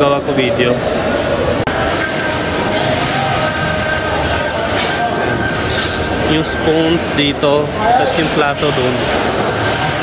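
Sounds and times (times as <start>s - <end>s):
crowd voices rumble: 0.0s - 10.0s
steel plates and spoons clattering: 5.6s - 6.6s.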